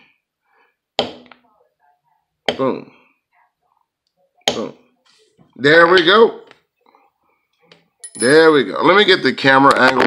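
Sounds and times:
wooden mallet striking metal tool: 1.0s - 1.4s.

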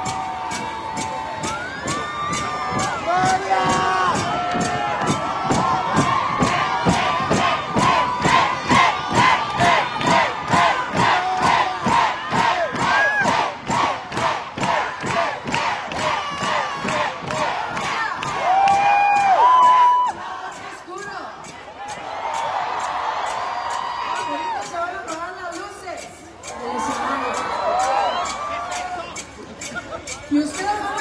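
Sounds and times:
crowd shouting in rhythm: 0.0s - 24.7s.

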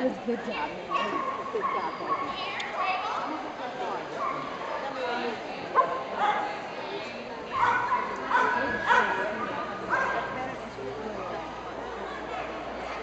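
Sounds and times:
dog barking: 5.8s - 6.5s, 7.5s - 10.3s.

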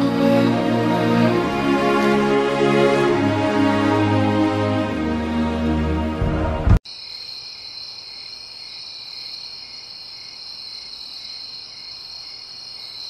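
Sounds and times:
crickets chirping: 6.9s - 13.0s.

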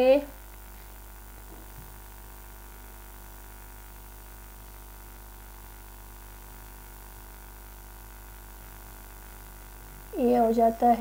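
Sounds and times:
electrical mains hum: 0.0s - 11.0s
faint hiss: 0.0s - 11.0s.

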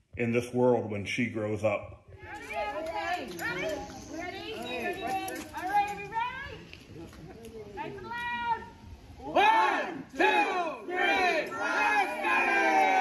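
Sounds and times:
group cheering: 7.4s - 13.0s
group shouting in unison: 8.0s - 13.0s.

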